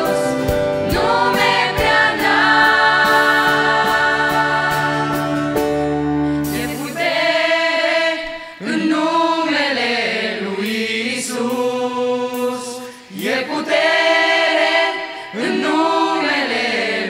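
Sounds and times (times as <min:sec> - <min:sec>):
mixed choir singing: 0:00.0 - 0:05.8, 0:06.4 - 0:17.0.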